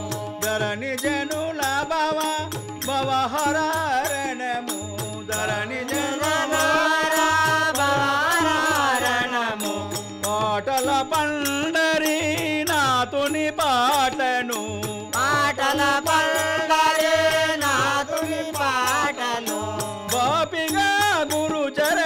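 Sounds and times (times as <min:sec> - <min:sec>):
hand cymbals: 0:00.0 - 0:22.0
harmonium: 0:00.0 - 0:22.0
men singing: 0:00.0 - 0:22.0
tabla beat: 0:00.0 - 0:22.0.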